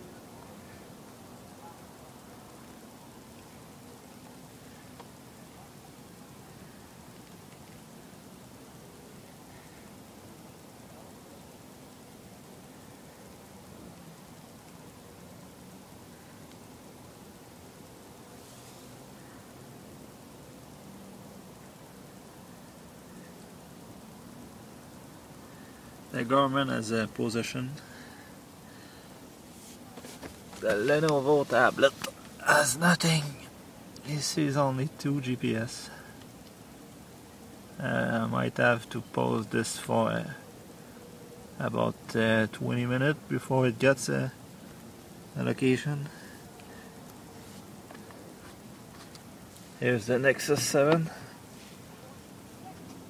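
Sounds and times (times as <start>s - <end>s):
faint steady hiss: 0.0s - 53.0s.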